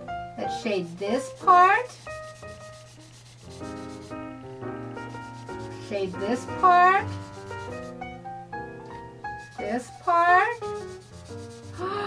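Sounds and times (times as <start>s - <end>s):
marker scribbling on paper: 0.5s - 4.3s, 5.0s - 8.0s, 9.4s - 11.8s.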